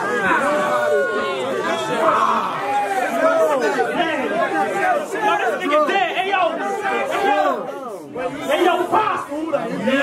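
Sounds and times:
men talking and calling out: 0.0s - 10.0s.

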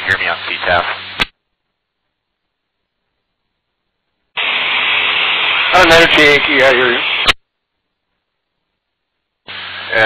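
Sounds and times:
pilot speaking over radio: 0.0s - 1.0s, 5.7s - 7.1s
radio static hiss: 0.0s - 1.4s, 4.3s - 7.5s, 9.4s - 10.0s.

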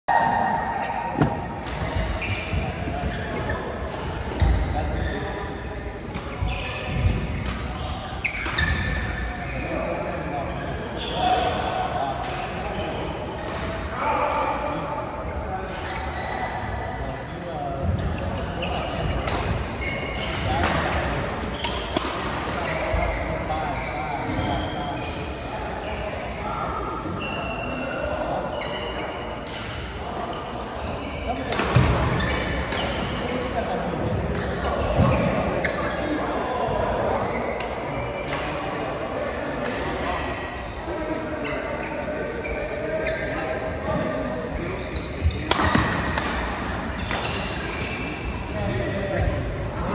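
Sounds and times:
shoes squeaking on court floor: 0.8s - 11.7s, 15.3s - 17.2s, 17.8s - 20.7s, 21.5s - 26.2s, 27.1s - 38.8s, 39.8s - 49.9s.

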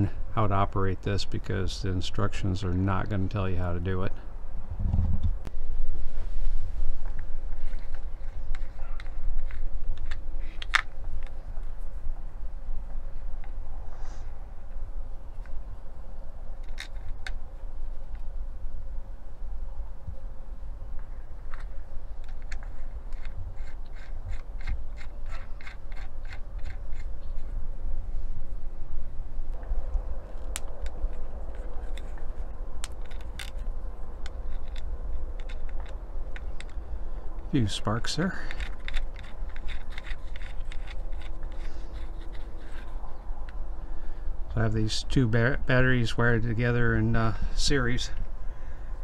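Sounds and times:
low rumble: 4.2s - 25.3s, 26.0s - 37.6s
cable scraping on battery terminal: 7.5s - 11.4s, 16.6s - 17.4s, 21.5s - 27.6s, 30.2s - 36.8s, 37.4s - 43.6s.

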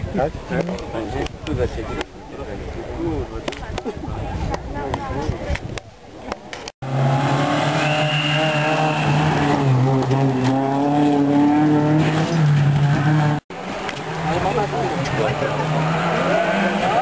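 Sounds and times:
car engine at high revs: 6.8s - 17.0s.

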